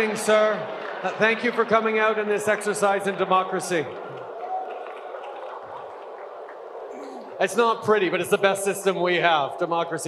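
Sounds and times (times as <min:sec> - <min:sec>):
seated audience murmur: 0:04.9 - 0:07.7.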